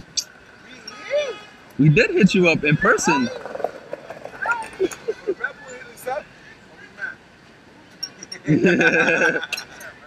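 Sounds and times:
faint voices talking: 0.0 - 10.0
light street noise: 0.0 - 10.0.

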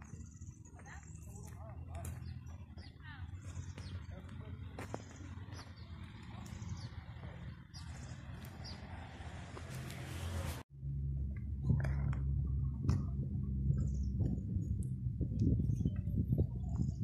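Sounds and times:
birds chirping: 0.0 - 10.6, 13.4 - 17.0
steady low rumble: 0.0 - 17.0.

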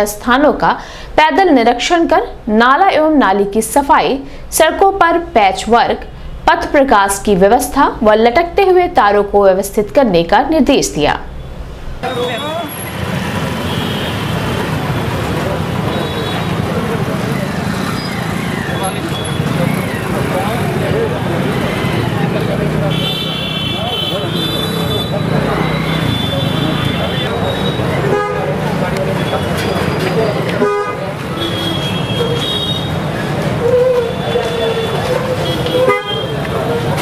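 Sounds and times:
street traffic: 0.0 - 37.0
vehicle horns honking: 11.4 - 14.9, 15.8 - 16.9, 22.8 - 33.1, 33.9 - 36.5
indistinct chatter of people: 12.0 - 37.0.

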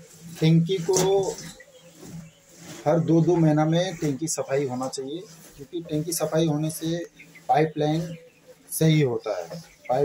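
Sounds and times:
man speaking: 0.4 - 1.6, 2.8 - 10.0.

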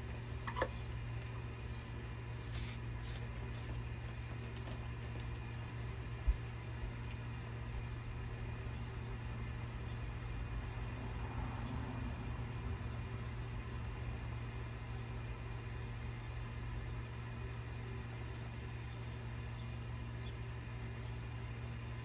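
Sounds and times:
steady low hum: 0.0 - 22.0
spray bottle misting: 2.4 - 4.6.

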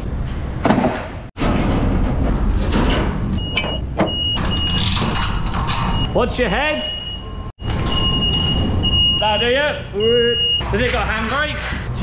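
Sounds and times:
metal knocks and rattles: 0.2 - 6.1
high beeping: 6.8 - 10.7.

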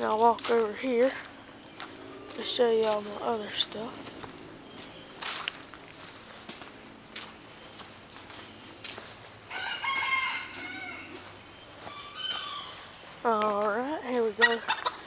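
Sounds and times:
footsteps on wet leaf litter: 0.0 - 15.0
rooster crowing: 9.5 - 11.3.

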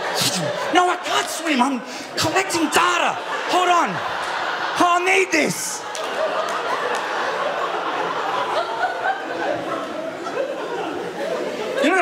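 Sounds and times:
audience laughing: 0.0 - 12.0
man speaking: 0.2 - 4.1, 4.8 - 5.8.

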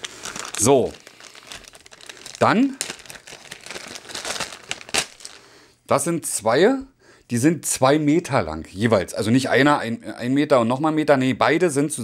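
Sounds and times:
plastic packaging crinkling: 0.0 - 5.5.

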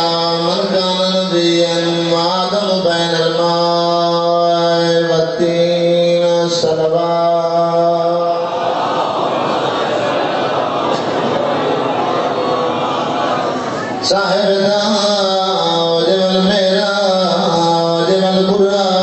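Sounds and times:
man chanting: 0.0 - 8.6, 14.0 - 19.0
crowd noise: 0.0 - 19.0.

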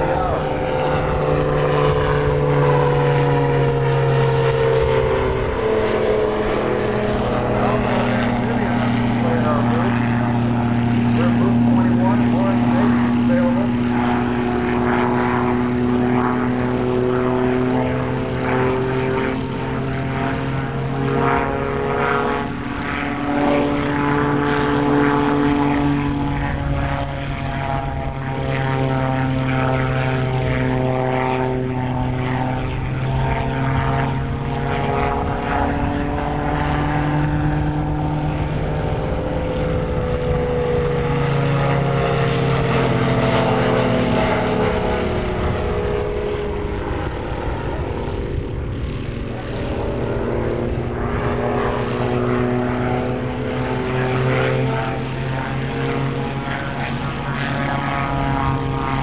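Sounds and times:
propeller engine drone: 0.0 - 59.0.

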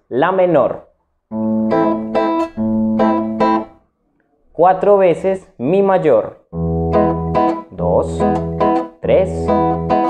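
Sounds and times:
acoustic guitar strumming waltz: 1.3 - 3.8, 6.5 - 10.0.

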